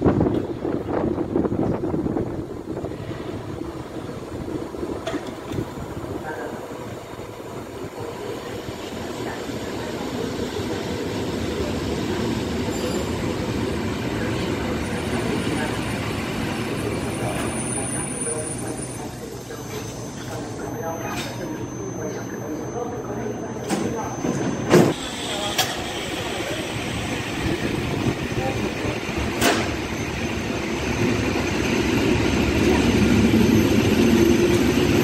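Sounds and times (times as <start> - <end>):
electric train running noise: 0.1 - 35.0.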